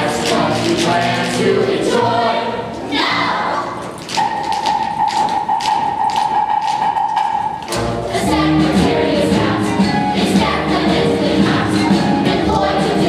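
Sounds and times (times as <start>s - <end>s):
stage musical accompaniment: 0.0s - 13.0s
dancers' feet tapping on stage: 3.8s - 7.9s.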